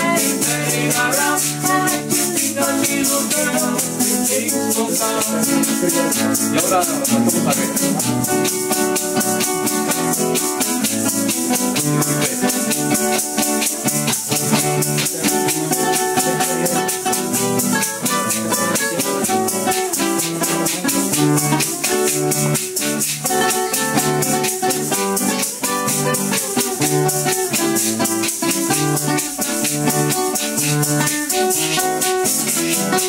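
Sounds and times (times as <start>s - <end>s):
acoustic guitars strummed and picked: 0.0s - 33.0s
maracas shaking: 0.0s - 33.0s.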